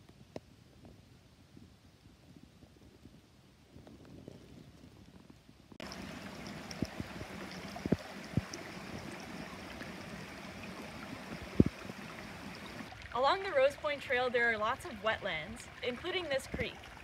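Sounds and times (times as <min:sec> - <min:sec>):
rocky creek flowing: 0:05.8 - 0:17.0
soft low thumps: 0:11.3 - 0:12.0.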